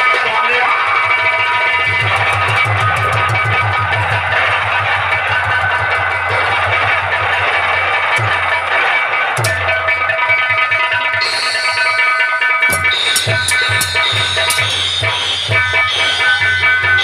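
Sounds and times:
fast steady drumming: 0.0 - 17.0
bright melody: 11.1 - 17.0.

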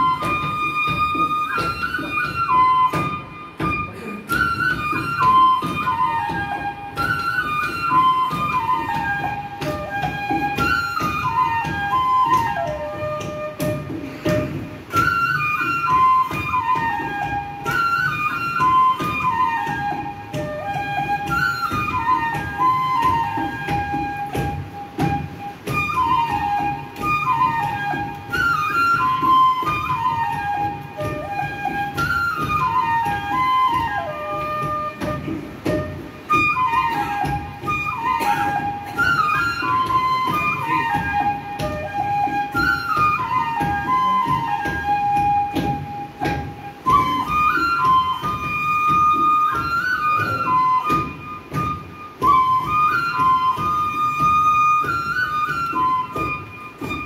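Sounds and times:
bamboo flute long note: 0.0 - 57.0
drum strokes: 0.0 - 57.0.

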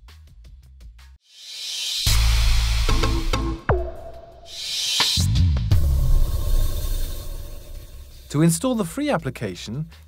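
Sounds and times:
low rumble sound effect: 4.6 - 8.3.

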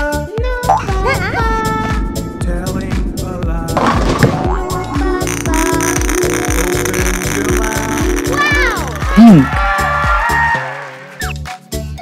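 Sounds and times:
upbeat children's song: 0.0 - 12.0
cartoon sound effects: 5.2 - 9.5.

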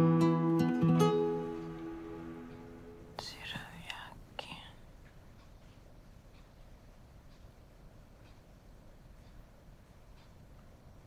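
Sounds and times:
woman whispering: 3.2 - 4.9.

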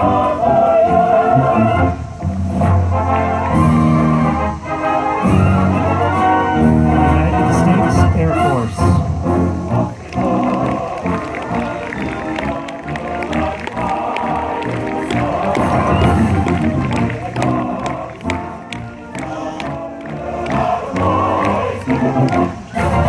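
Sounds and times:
concert band playing a march: 0.0 - 23.0
audience cheering and clapping: 9.7 - 23.0.

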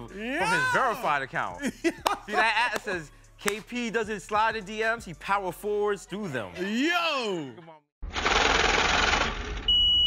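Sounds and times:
high-pitched beep: 9.7 - 10.0.

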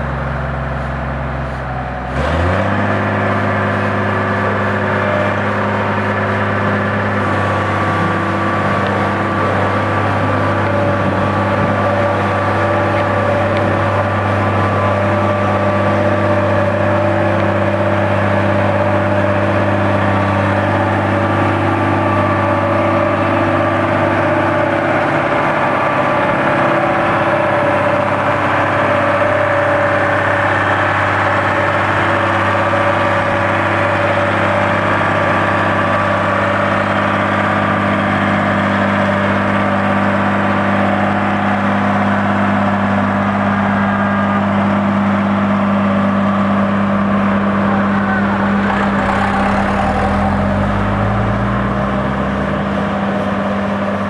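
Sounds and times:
road roller diesel engine running: 0.0 - 54.0.

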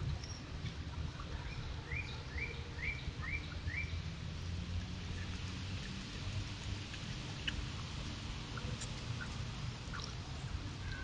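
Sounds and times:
songbird chirping: 0.0 - 4.1.

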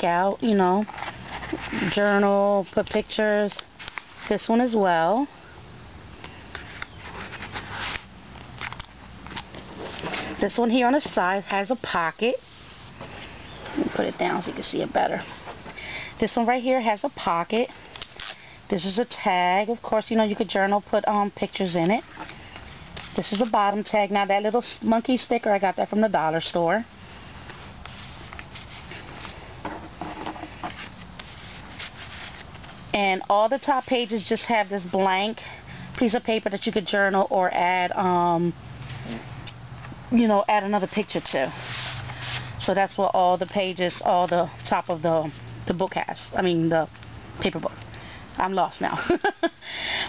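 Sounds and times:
low steady hum: 0.0 - 50.0
paper rustling: 0.8 - 2.2, 6.2 - 10.5, 21.6 - 23.7, 27.8 - 32.8, 40.9 - 42.6.

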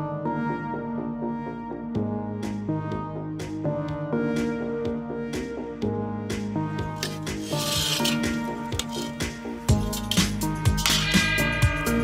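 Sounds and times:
music with held tones: 0.0 - 12.0
metal blade scraping: 7.0 - 12.0.

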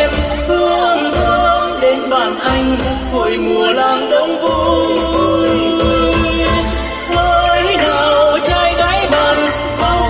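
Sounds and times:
live band music over pa: 0.0 - 10.0.

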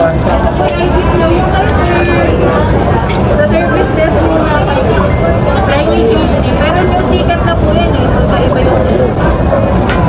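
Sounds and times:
low rumble of background noise: 0.0 - 10.0
voices talking: 0.0 - 10.0.

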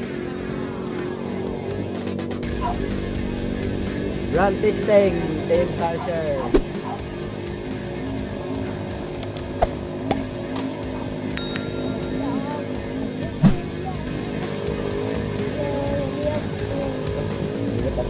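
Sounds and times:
background music sustained tones: 0.0 - 18.0
high ringing tone: 11.4 - 12.4.

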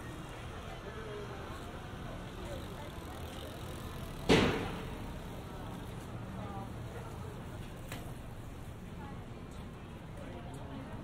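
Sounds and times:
bicycle riding past: 0.0 - 8.7
faint voices: 0.0 - 11.0
street background noise: 0.0 - 11.0.

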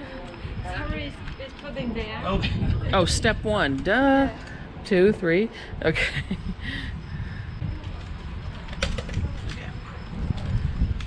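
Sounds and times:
faint voices: 0.0 - 3.0
wind rumbling on microphone: 0.0 - 11.0.

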